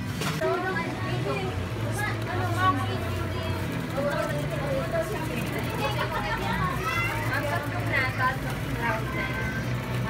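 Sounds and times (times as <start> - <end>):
drink dispenser humming: 0.0 - 10.0.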